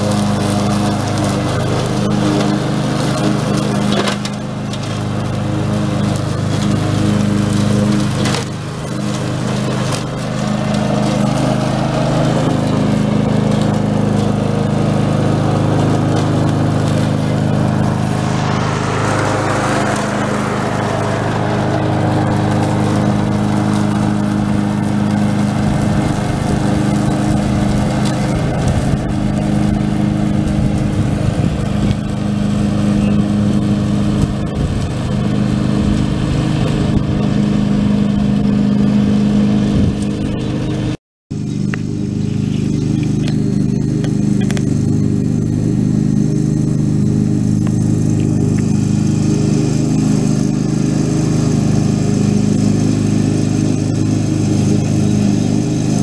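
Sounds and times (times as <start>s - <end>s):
mower blades cutting grass: 0.0s - 56.0s
ride-on lawn mower engine running: 0.0s - 56.0s.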